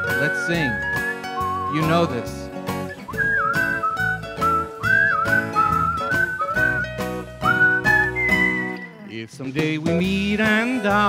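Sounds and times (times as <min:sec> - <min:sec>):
person whistling a melody: 0:00.0 - 0:02.1, 0:02.9 - 0:09.0
backing music with strummed beat: 0:00.0 - 0:11.0.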